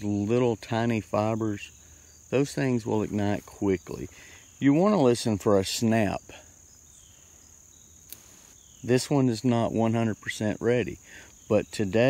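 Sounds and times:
insects chirring: 0:00.0 - 0:12.0
faint click of weed stalk: 0:08.0 - 0:08.6.

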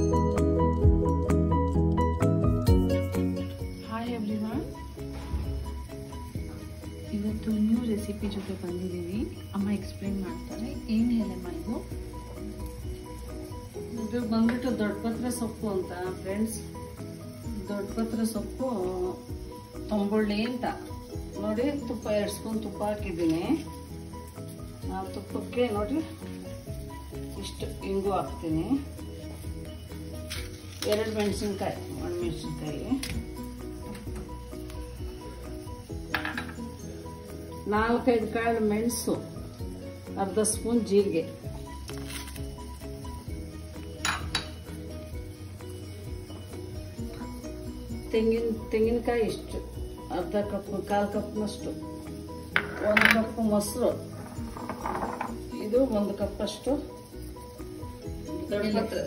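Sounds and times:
background music: 0:00.0 - 0:59.0
ghee sizzling in a pan: 0:00.0 - 0:59.0
woman speaking: 0:30.8 - 0:33.1, 0:48.1 - 0:51.8, 0:52.7 - 0:54.1, 0:55.5 - 0:56.9, 0:58.4 - 0:59.0
kitchenware clink: 0:36.1 - 0:36.7, 0:44.0 - 0:44.6, 0:52.6 - 0:53.4, 0:54.1 - 0:55.5.

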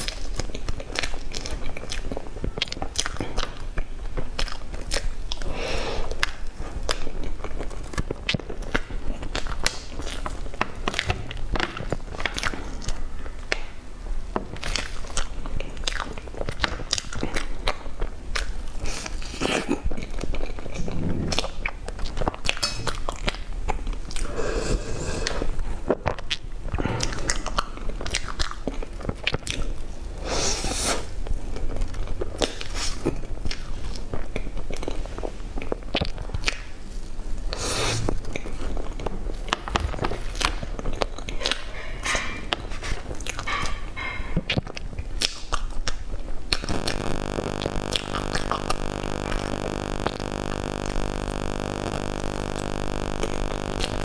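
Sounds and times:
wet chewing and lip smacks: 0:00.0 - 0:05.5, 0:25.8 - 0:29.8, 0:38.2 - 0:53.7.

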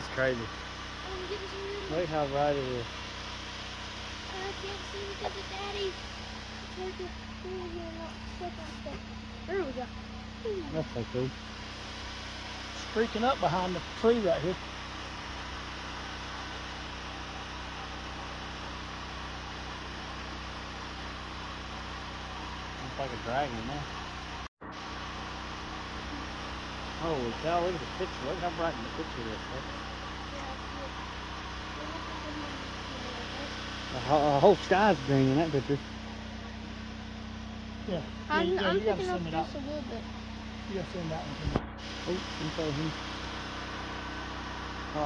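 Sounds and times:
low mechanical hum: 0:00.0 - 0:45.0
even hiss: 0:40.7 - 0:44.0.

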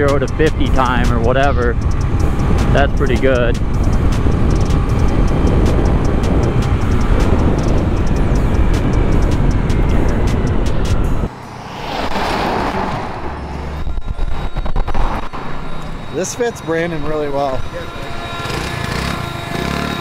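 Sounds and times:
wind noise on microphone: 0:00.0 - 0:11.3, 0:11.9 - 0:15.7
scooter engine running: 0:00.4 - 0:10.8, 0:18.4 - 0:20.0
car passing close by: 0:11.3 - 0:13.9.

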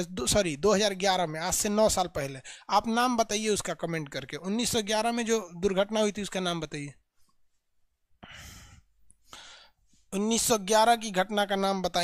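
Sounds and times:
man's breathy exhale: 0:08.2 - 0:09.8.

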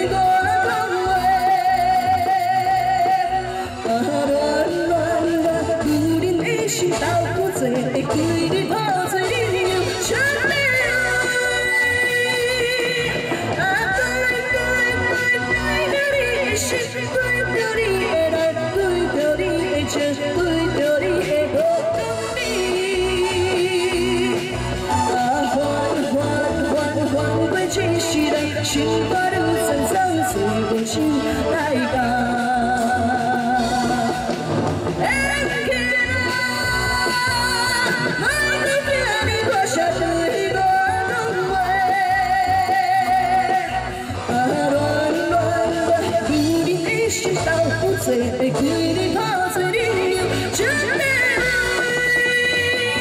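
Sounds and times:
woman singing with vibrato: 0:00.0 - 0:53.0.

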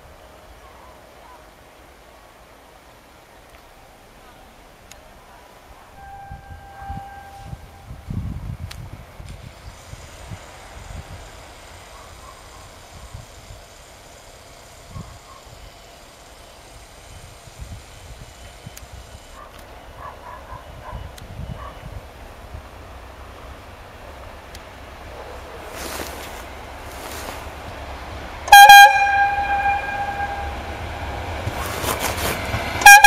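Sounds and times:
diesel train rumbling: 0:00.0 - 0:33.0
brief steady tone: 0:06.0 - 0:08.0.

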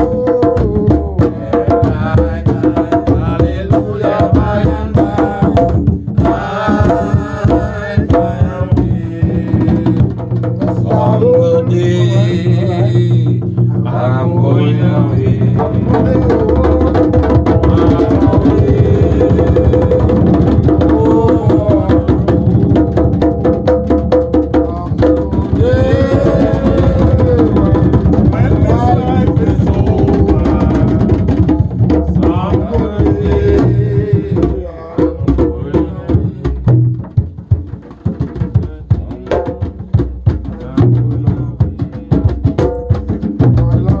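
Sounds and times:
man singing: 0:00.0 - 0:23.2, 0:24.6 - 0:37.1, 0:38.2 - 0:44.0
hand drums played in rhythm: 0:00.0 - 0:44.0.

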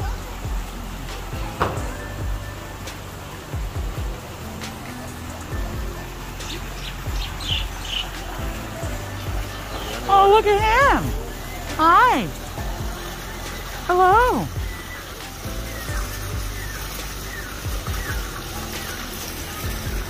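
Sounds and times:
background music: 0:00.0 - 0:20.0
high bird chirps: 0:04.5 - 0:20.0.

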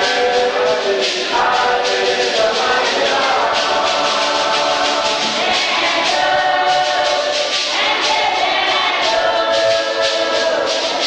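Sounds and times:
church choir singing a hymn: 0:00.0 - 0:11.0.

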